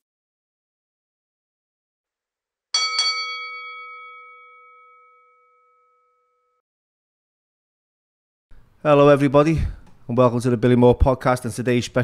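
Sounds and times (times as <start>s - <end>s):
bell-like chime ringing: 2.8s - 6.6s.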